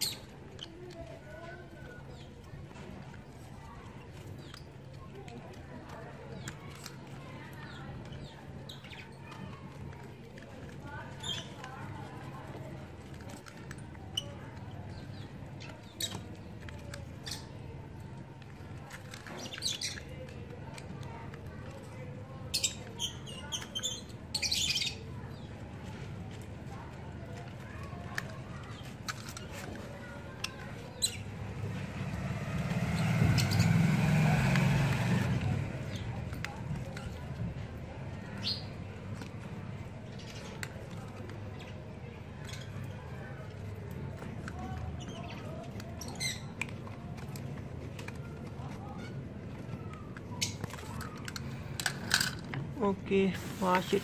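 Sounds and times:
blade shaving bark: 31.3 - 36.8.

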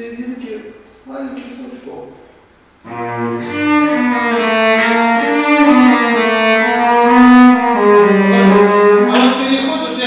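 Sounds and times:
cello slow bowed melody: 2.8 - 10.0.

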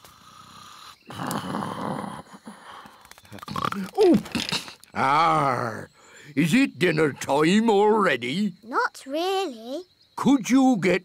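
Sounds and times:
cartoon character snoring: 0.0 - 2.5.

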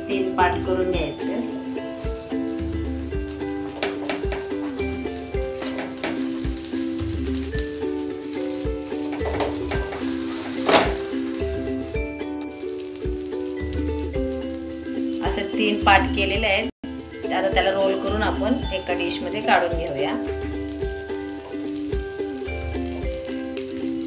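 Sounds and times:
background music with beat: 0.0 - 24.0
food sizzling on pan: 0.0 - 24.0
spatula scraping pan: 1.4 - 15.2.

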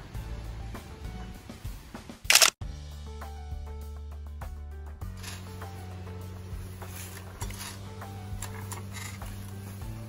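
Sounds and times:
background music with steady beat: 0.0 - 10.0
camera shutter: 2.3 - 2.6.

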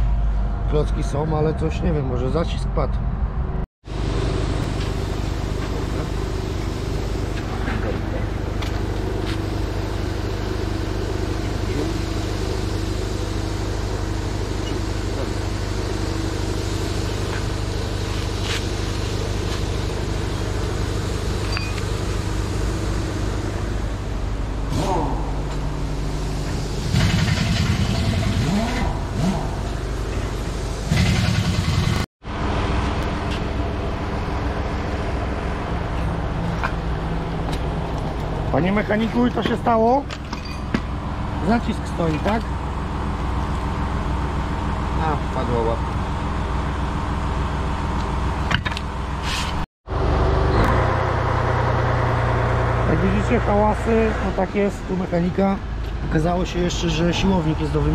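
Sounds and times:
vehicle engine idling: 3.9 - 57.9.

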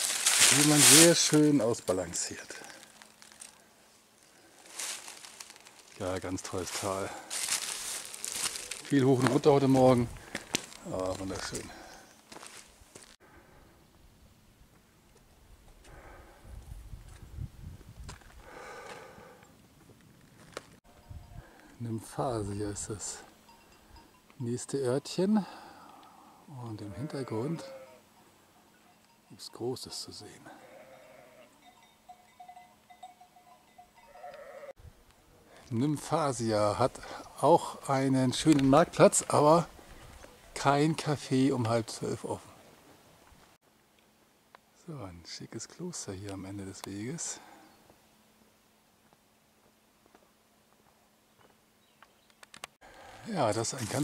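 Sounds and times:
brief rustle or crunch: 0.0 - 1.5, 2.6 - 3.6, 4.6 - 6.0, 6.7 - 9.4
distant livestock calls: 25.5 - 29.1, 30.2 - 34.7.

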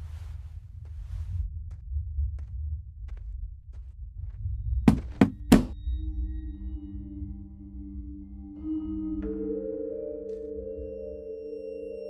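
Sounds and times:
low throbbing rumble: 0.0 - 8.5.

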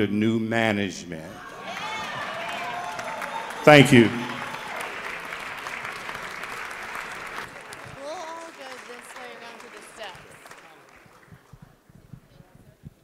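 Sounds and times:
audience applauding: 1.4 - 12.0.

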